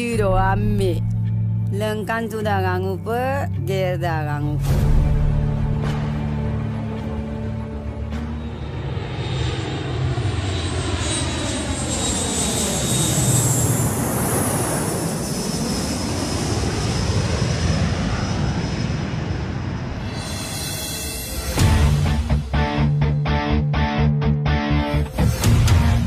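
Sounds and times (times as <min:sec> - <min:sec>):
high jet whine: 0:04.7 - 0:23.5
jet engines roaring: 0:05.8 - 0:22.8.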